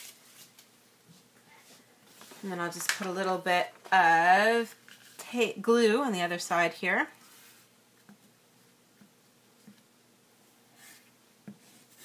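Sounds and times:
paper rustling on plastic mat: 2.1 - 3.2.

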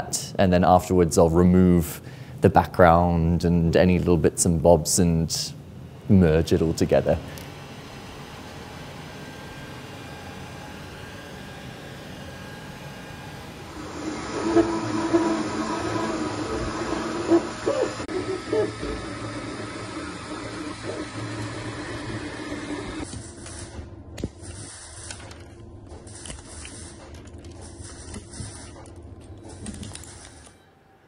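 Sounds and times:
printer motors whining: 6.6 - 31.0.

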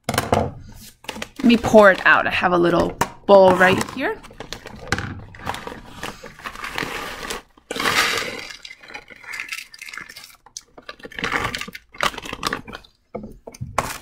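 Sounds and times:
granules clattering into plastic bowl: 0.1 - 14.0
plastic bag crinkling: 1.0 - 13.0.

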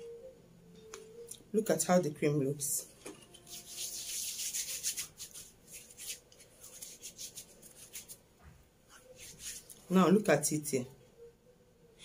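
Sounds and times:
hands rubbing lotion: 3.3 - 8.2, 8.9 - 9.9.

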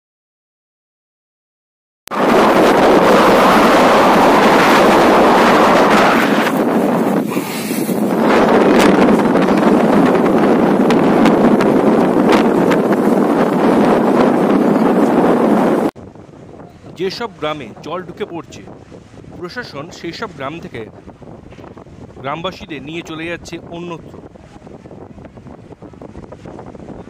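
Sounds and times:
wind blowing over microphone: 2.1 - 27.0.

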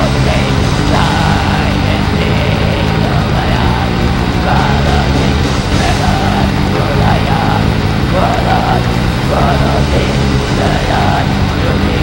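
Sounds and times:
heavy metal band playing live: 0.0 - 12.0.

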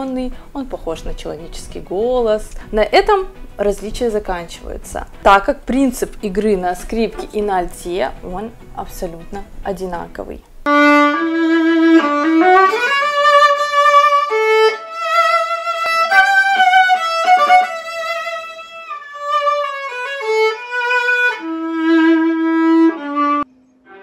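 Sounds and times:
solo viola bowed: 10.7 - 24.0.

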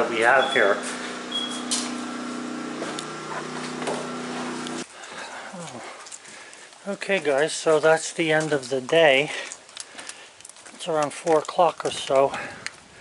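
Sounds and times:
generator humming: 0.0 - 4.8
outdoor background noise: 0.0 - 13.0.

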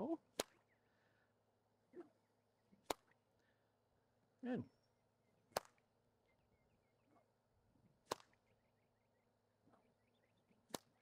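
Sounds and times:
whip cracking: 0.3 - 0.6, 2.8 - 3.2, 5.5 - 5.8, 8.0 - 8.4, 10.7 - 11.0.

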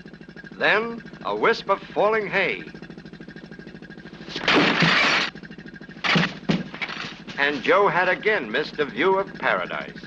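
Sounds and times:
pump chugging: 0.0 - 10.0.

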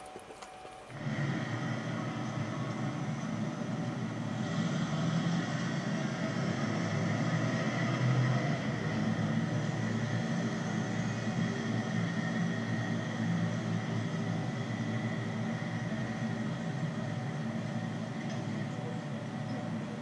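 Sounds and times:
city street traffic rumble: 0.0 - 20.0.

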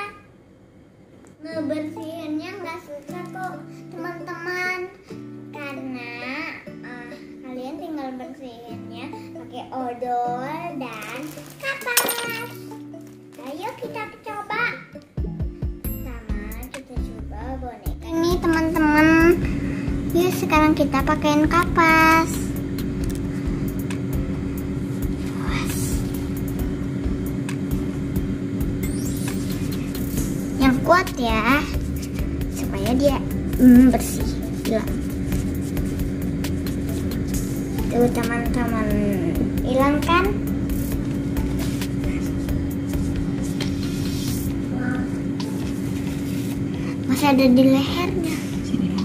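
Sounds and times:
motor-like hum with rumble: 17.9 - 49.0
cotton pad rubbing plastic: 31.0 - 39.0, 40.7 - 44.7, 45.5 - 46.7.

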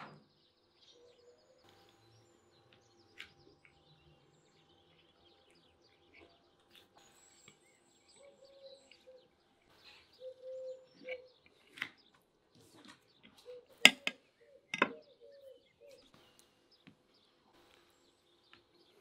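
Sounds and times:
faint bird chirps: 0.0 - 19.0
clicks of eating: 4.9 - 7.8, 10.8 - 14.9
fork knocking on ceramic plate: 13.9 - 15.0.

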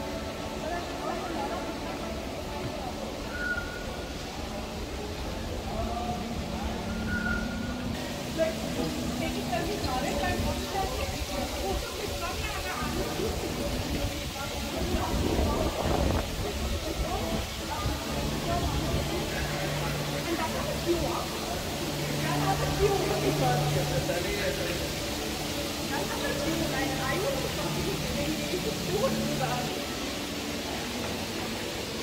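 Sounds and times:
people chattering: 0.0 - 32.0.

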